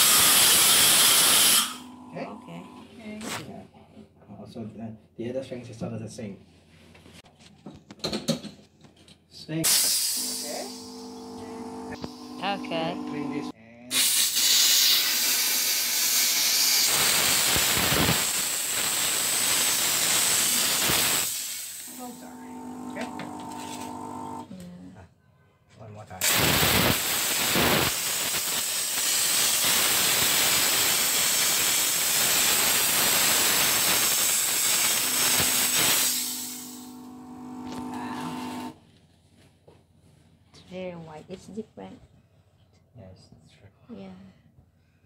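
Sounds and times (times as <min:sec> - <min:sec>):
steam cleaner hissing: 0:00.0 - 0:02.4, 0:09.6 - 0:24.4, 0:26.2 - 0:38.8
steady low hum: 0:10.2 - 0:13.5.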